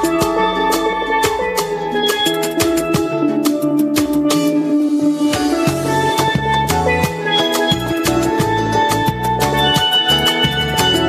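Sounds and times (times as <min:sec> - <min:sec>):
music with steady drum beat: 0:00.0 - 0:11.0.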